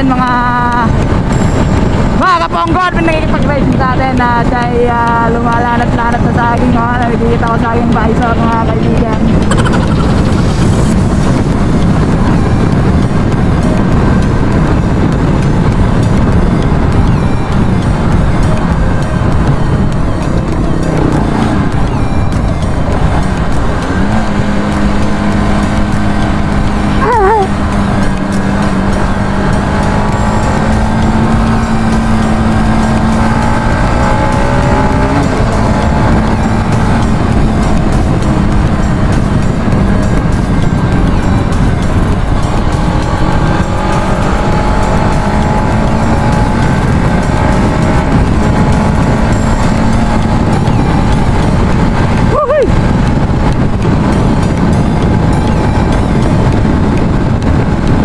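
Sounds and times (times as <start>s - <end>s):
motorcycle engine tone: 0.0s - 58.0s
wind rumble on microphone: 0.0s - 58.0s
wavering falling tone: 16.8s - 28.2s.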